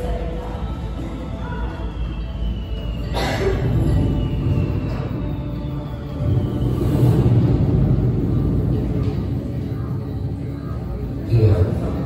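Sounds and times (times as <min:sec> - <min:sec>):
deep rumble: 0:00.0 - 0:12.0.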